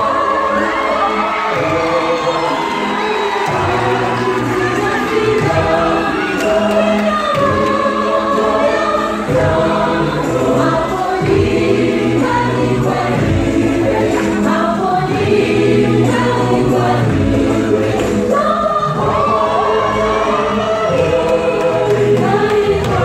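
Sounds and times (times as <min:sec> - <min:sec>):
gospel choir singing: 0:00.0 - 0:23.0.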